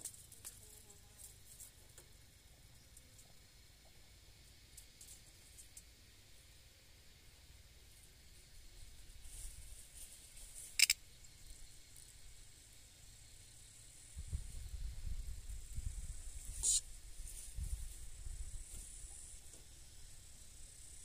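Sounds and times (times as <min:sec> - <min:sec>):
high insect hum: 0:00.0 - 0:21.0
short sharp chirps: 0:10.8 - 0:11.0, 0:16.6 - 0:16.8
wind rumble on microphone: 0:14.0 - 0:19.1.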